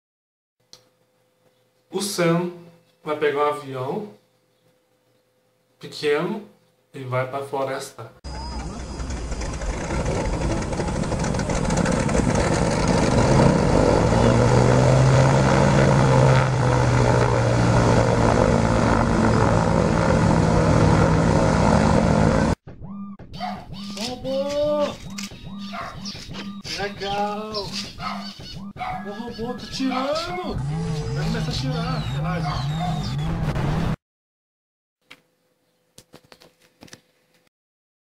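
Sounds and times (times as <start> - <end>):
propeller plane engine hum: 8.3 - 22.6, 30.6 - 33.2
person speaking: 23.9 - 25.2, 29.0 - 32.5.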